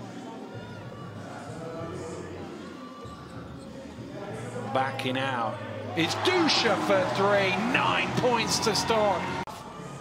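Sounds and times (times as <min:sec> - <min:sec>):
crowd murmuring and calling out: 0:05.4 - 0:10.0.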